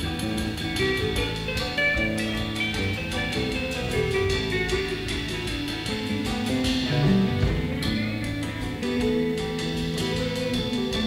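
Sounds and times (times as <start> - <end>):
bass guitar: 0.0 - 11.0
drum kit steady beat: 0.0 - 11.0
electric guitar lines: 0.0 - 11.0.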